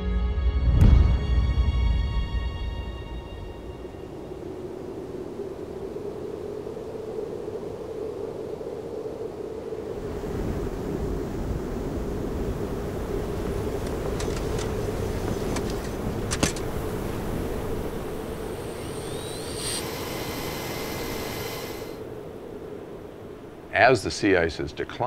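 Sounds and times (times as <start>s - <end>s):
rushing noise: 9.6s - 23.5s
steady mechanical hum: 11.0s - 23.7s.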